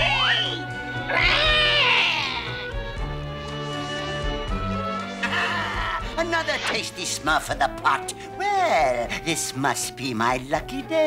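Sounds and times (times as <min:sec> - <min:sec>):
cartoon cat yowling: 0:00.0 - 0:02.7
orchestral background music: 0:00.0 - 0:11.0.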